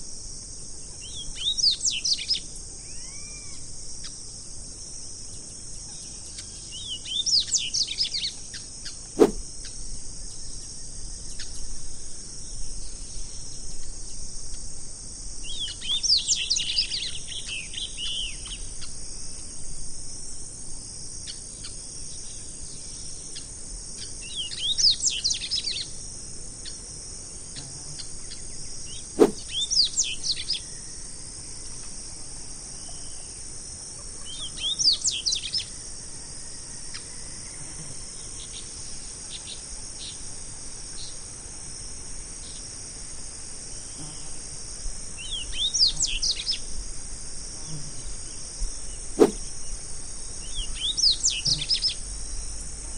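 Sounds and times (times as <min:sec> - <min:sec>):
sharp click: 0:09.2 - 0:09.4, 0:49.2 - 0:49.4.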